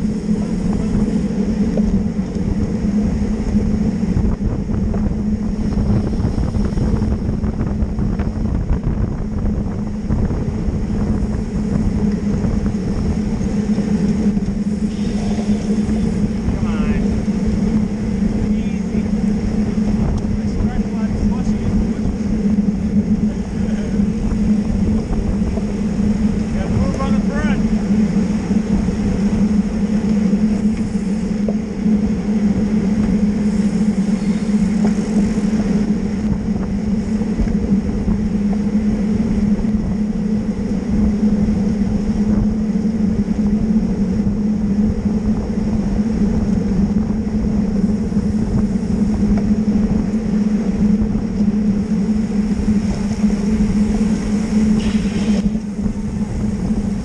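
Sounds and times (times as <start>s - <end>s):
low hum: 0.0s - 57.0s
wind and road rush: 0.0s - 57.0s.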